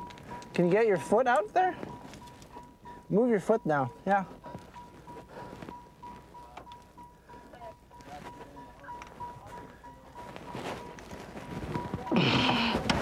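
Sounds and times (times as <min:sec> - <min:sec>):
rustling and knocks of movement: 0:00.0 - 0:13.0.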